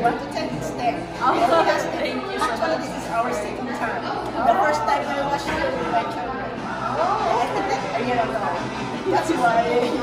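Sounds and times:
background chatter: 0.0 - 10.0
two people talking: 0.0 - 10.0.

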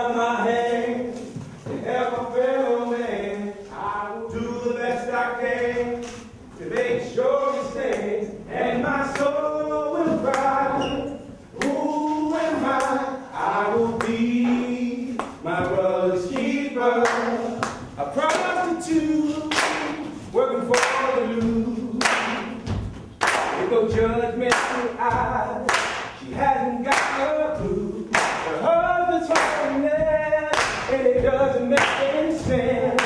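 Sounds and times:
group singing unaccompanied: 0.0 - 33.0
hand-claps: 9.1 - 9.3, 14.0 - 15.4, 16.3 - 18.6, 19.4 - 20.1, 20.7 - 21.2, 22.0 - 22.5, 23.2 - 23.8, 24.5 - 27.4, 28.1 - 28.6, 29.3 - 31.0, 31.7 - 33.0.

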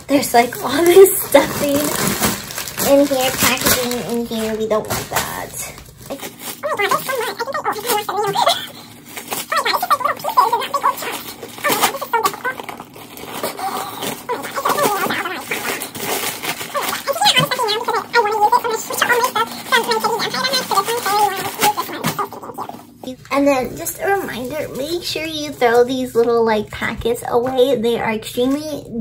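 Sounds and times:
paper stuffing rustling: 0.1 - 26.3
unintelligible voice: 6.6 - 8.6, 16.7 - 29.0.

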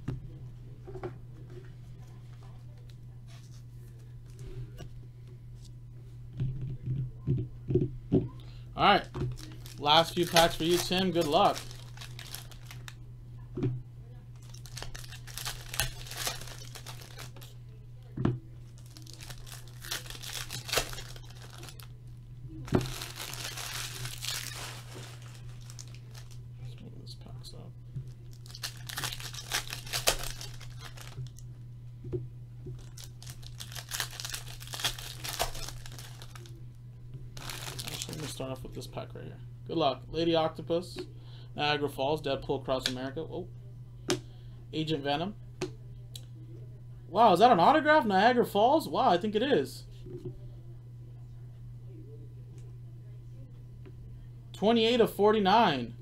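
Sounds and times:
steady low hum: 0.0 - 56.0
foil wrappers crinkling and tearing: 9.2 - 13.0, 14.4 - 17.6, 18.7 - 21.9, 22.6 - 26.4, 28.1 - 31.4, 32.8 - 36.6, 37.4 - 38.4
cards shuffled and handled: 9.3 - 12.9, 14.4 - 17.5, 18.8 - 21.8, 28.4 - 31.2.

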